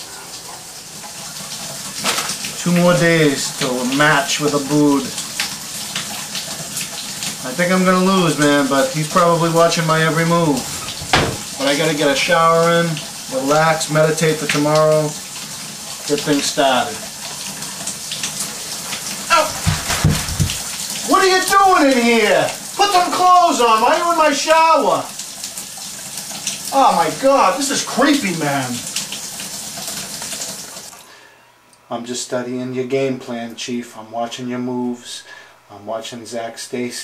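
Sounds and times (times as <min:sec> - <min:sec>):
water running: 0:00.0 - 0:31.1
low thump: 0:10.6 - 0:11.6.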